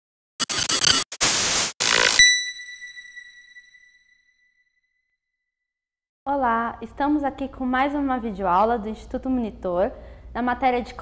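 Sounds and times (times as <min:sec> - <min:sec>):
high ringing tone: 0:01.8 - 0:04.6.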